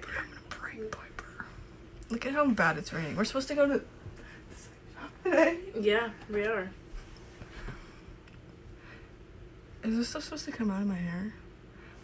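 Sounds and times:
whispering and low voices: 0.0 - 1.6.

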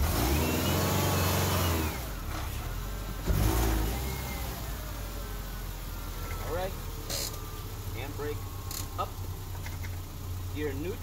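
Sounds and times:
car engine revving: 0.0 - 11.0.

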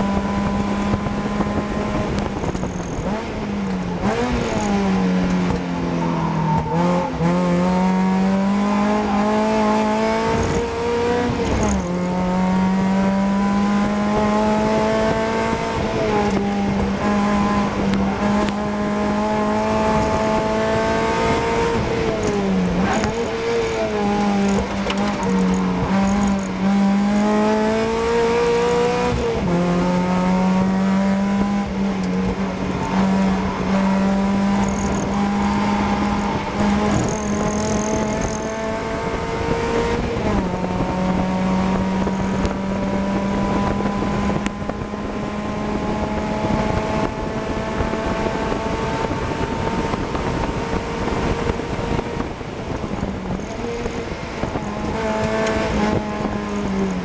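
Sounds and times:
car engine revving with gear changes: 0.0 - 57.0.

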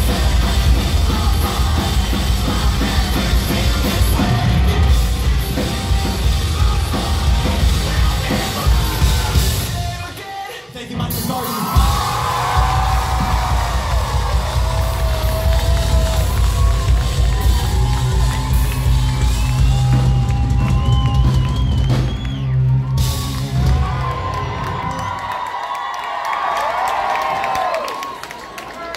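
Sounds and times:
live rock band playing: 0.0 - 25.1
heavy drums: 0.0 - 25.3
crowd cheering and whooping: 11.5 - 28.9.

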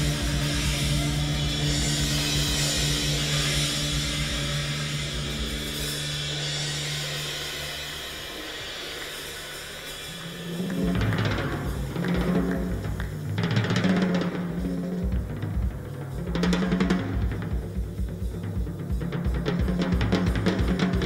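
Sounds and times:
alto saxophone: 0.0 - 16.4
double bass: 0.0 - 21.0.

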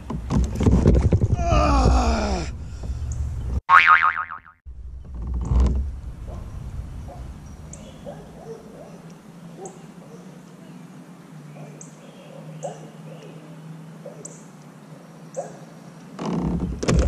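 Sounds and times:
cartoon boing: 3.7 - 4.6.

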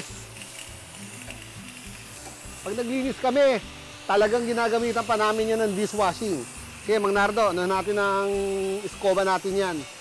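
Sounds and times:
garden hose spraying water: 0.0 - 10.0.

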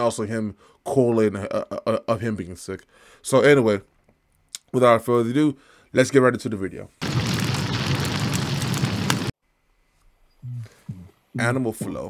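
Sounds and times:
deep rumble: 7.0 - 9.3
rushing fire-like noise: 7.0 - 9.4.

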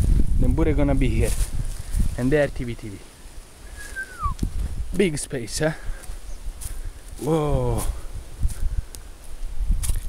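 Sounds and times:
low rumble on microphone: 0.0 - 2.6, 3.8 - 5.0
footsteps on dry leaves: 0.0 - 4.9, 5.6 - 10.0.

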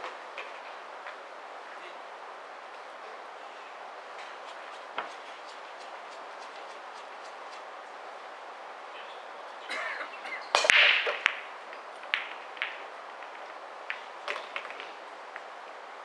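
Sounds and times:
billiard balls clacking: 10.4 - 15.0
cue ball breaking racked balls: 10.5 - 15.0.

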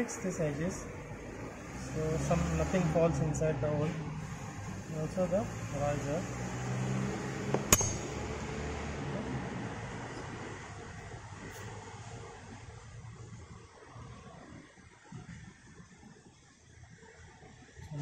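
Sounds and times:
sharp clink: 7.7 - 8.2.

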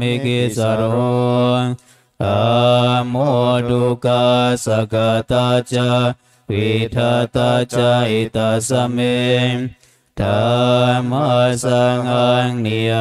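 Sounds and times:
monks chanting in low voices: 0.0 - 13.0.

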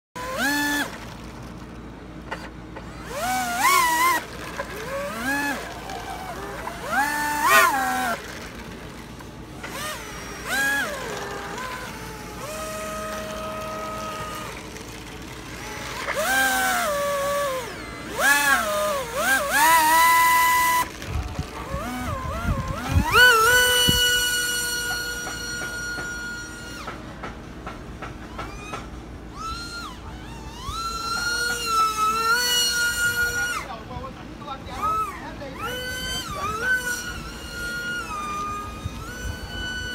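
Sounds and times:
electric motor and propeller whining: 0.2 - 39.9.

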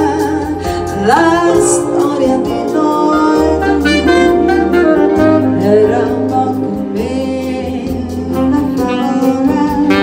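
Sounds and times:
electronic keyboard accompaniment: 0.0 - 10.0
steady bass line: 0.0 - 10.0
tenor saxophone melody: 3.1 - 10.0.

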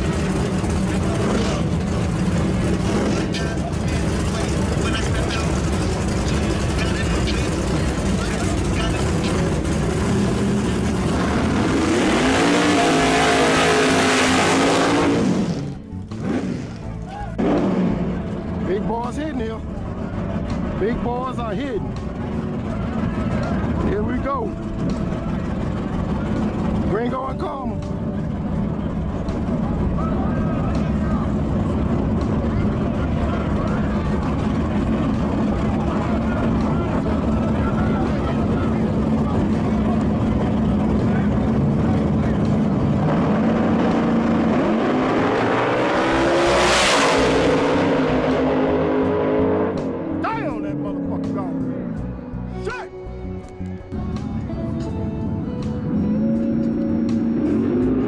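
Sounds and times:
race cars accelerating away: 0.0 - 21.4, 28.2 - 52.2, 54.0 - 58.0
race car engines idling: 0.0 - 46.3, 47.5 - 58.0
engine throttle blips: 0.0 - 58.0.

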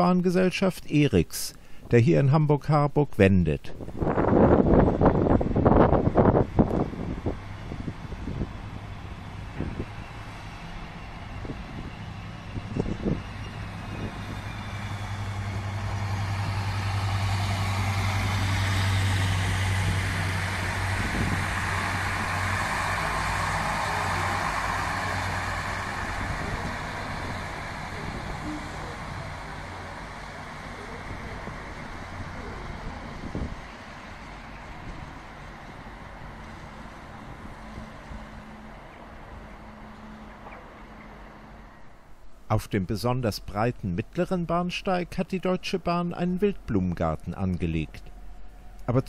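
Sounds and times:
railcar diesel engine drone: 3.7 - 49.0.

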